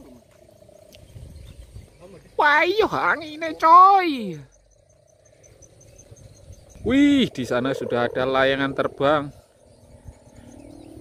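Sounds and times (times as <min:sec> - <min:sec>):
cricket chirping: 0:00.0 - 0:11.0.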